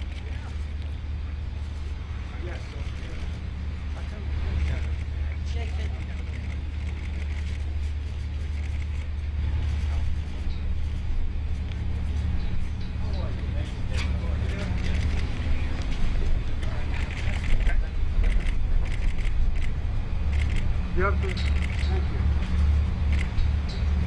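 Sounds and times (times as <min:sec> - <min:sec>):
low engine rumble: 0:00.0 - 0:24.0.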